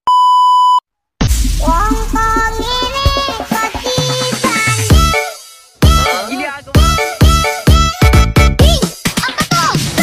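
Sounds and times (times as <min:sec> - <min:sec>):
music with drumbeat and melody: 0:01.3 - 0:10.0.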